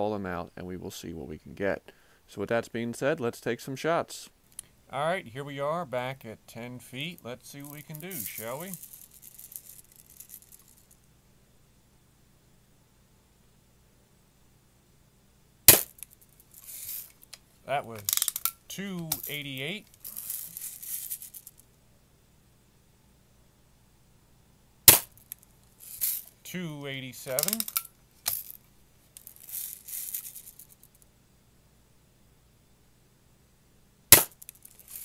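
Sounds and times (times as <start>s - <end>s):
bbs rattling in gun: 7.0s - 11.0s, 15.7s - 21.6s, 24.9s - 26.4s, 27.2s - 30.9s, 34.2s - 35.0s
bb gun shot crack: 15.7s - 16.0s, 24.9s - 25.2s, 34.1s - 34.4s.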